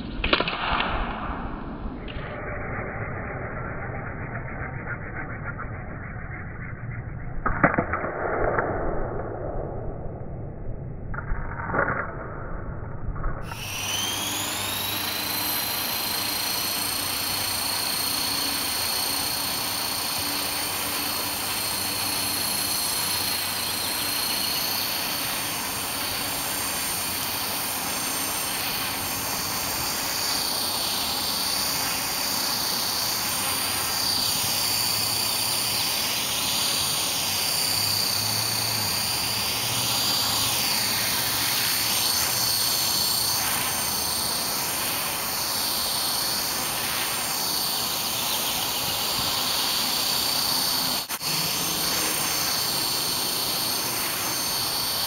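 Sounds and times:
rc helicopter motor whine: 2.0s - 7.0s, 13.4s - 55.0s.

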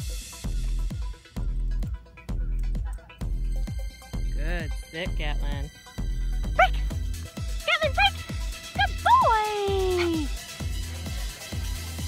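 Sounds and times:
background music with steady beat: 0.0s - 12.0s
dog yipping: 6.6s - 6.9s, 7.7s - 10.5s
dog whining: 8.8s - 10.4s.

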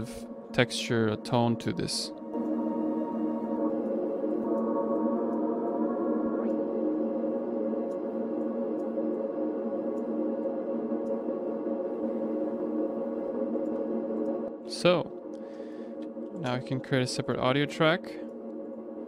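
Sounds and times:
atmospheric pad chord: 0.0s - 19.0s.

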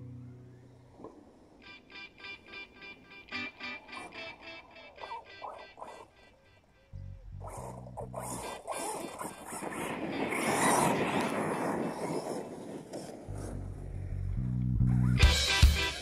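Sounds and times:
rc truck passing on dirt: 0.0s - 16.0s
background music with bass: 6.9s - 8.3s, 13.3s - 16.0s.

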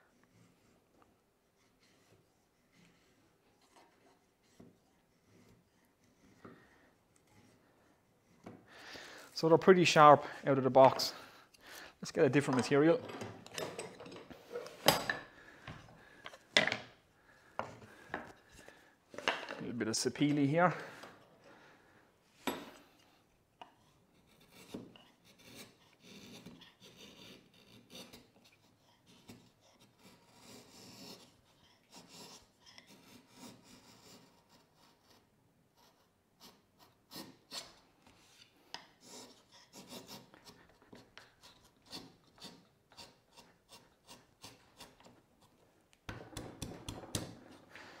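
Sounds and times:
chisel scraping wood: 1.5s - 9.6s, 23.7s - 47.9s.

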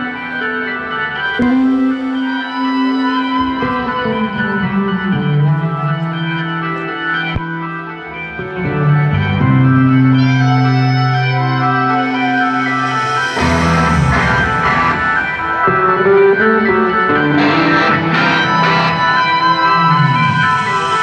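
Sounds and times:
sustained keyboard chords: 0.0s - 21.0s.

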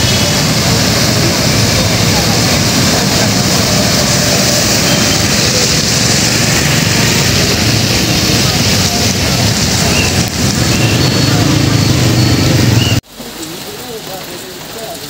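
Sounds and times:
car and motorcycle engines rumbling: 0.0s - 15.0s
tyres hissing through water: 0.0s - 15.0s.

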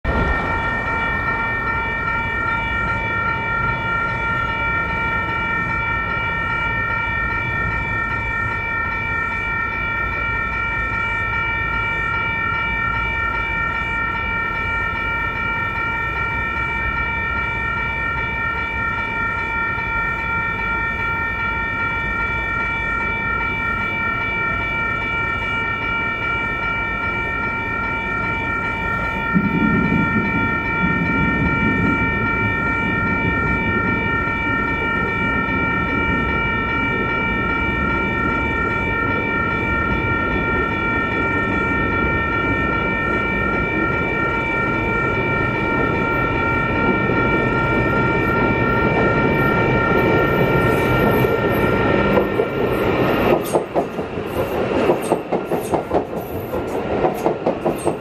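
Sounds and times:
level crossing warning bells: 0.0s - 58.0s.

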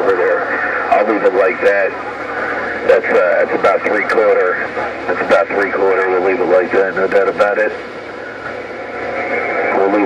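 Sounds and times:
radio static hiss: 0.0s - 10.0s
man's voice: 2.8s - 7.8s.

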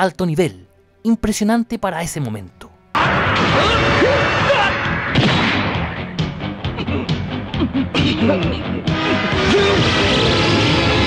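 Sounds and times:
background music: 0.0s - 11.0s
impact sound effects: 3.0s - 6.8s.

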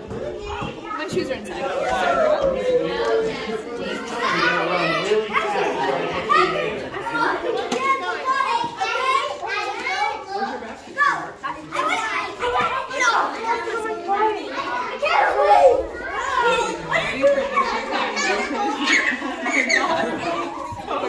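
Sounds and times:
children talking and calling out: 0.0s - 21.0s.

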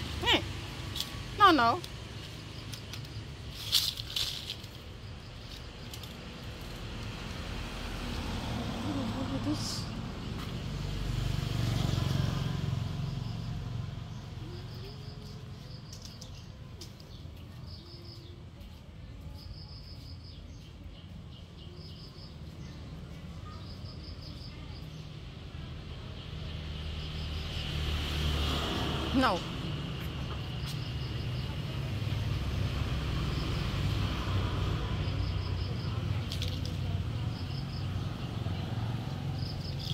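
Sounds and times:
vehicle engine rumble passing: 0.0s - 17.0s, 22.4s - 39.9s
insects droning: 26.5s - 39.9s.

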